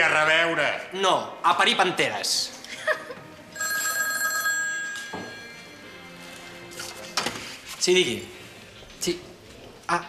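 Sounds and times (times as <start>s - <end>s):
telephone ringing: 3.5s - 5.9s.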